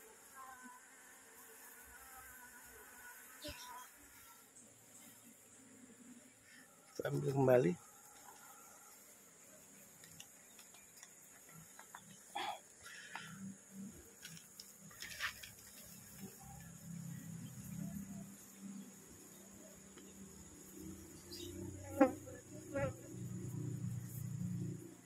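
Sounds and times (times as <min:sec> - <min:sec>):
bees buzzing: 0:00.0 - 0:14.9, 0:15.5 - 0:25.0.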